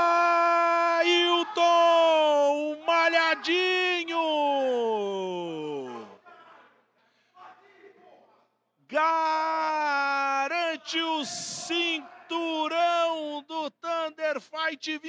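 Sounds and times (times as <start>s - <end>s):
man yelling: 0.0s - 6.2s, 8.9s - 15.0s.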